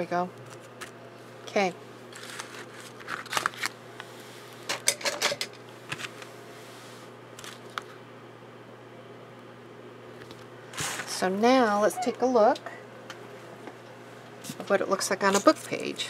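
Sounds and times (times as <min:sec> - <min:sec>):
paper rustling: 0:02.2 - 0:03.7.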